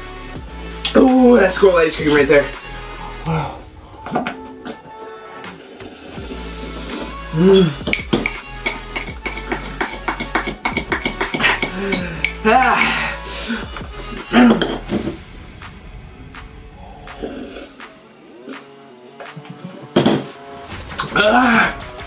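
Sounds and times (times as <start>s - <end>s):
background music: 0.0s - 22.0s
person grunting: 3.2s - 3.7s, 7.3s - 7.8s, 11.7s - 13.7s, 21.2s - 21.9s
metal spoon clinking against glass: 7.9s - 12.4s.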